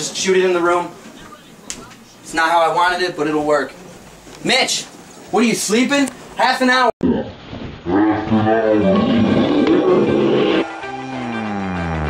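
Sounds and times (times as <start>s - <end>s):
man growling roar: 7.9s - 10.6s.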